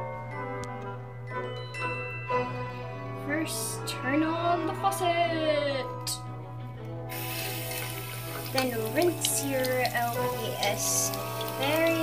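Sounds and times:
faucet turned on: 7.1 - 12.0
water running into sink: 7.1 - 12.0.

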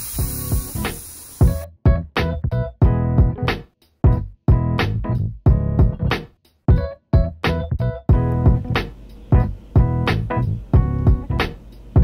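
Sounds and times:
air hissing out of valve: 0.0 - 1.6
background music: 0.2 - 12.0.

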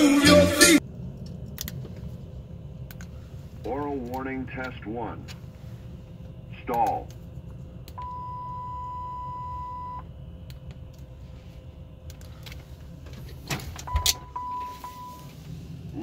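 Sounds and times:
steady low hum: 0.0 - 16.0
warning beep: 8.0 - 10.0.

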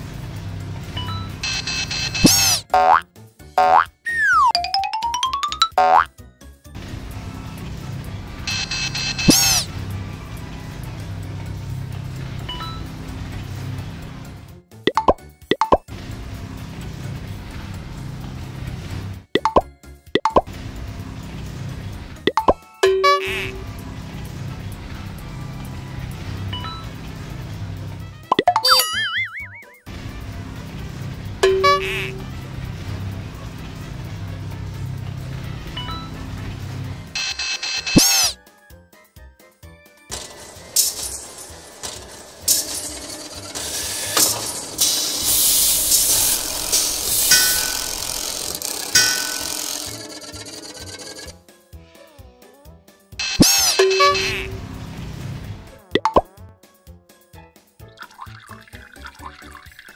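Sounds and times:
cartoon background music: 0.9 - 16.3, 18.8 - 59.9
wobbling sound effect: 2.2 - 3.0, 3.6 - 6.1, 9.2 - 9.7, 28.3 - 29.8
sliding whistle effect: 3.6 - 4.6, 8.5 - 9.7, 28.6 - 29.9, 37.2 - 38.4.

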